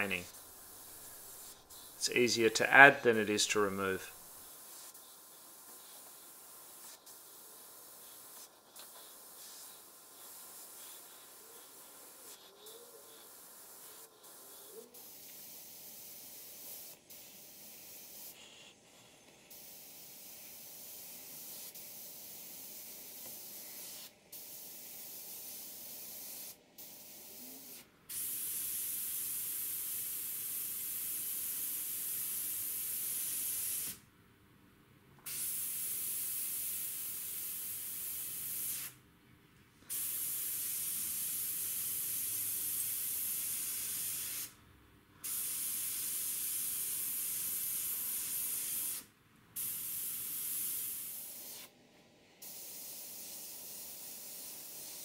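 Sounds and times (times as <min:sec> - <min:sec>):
airbrush hissing: 0:00.0 - 0:34.0, 0:35.3 - 0:39.0, 0:39.9 - 0:44.6, 0:45.2 - 0:51.7, 0:52.4 - 0:55.0.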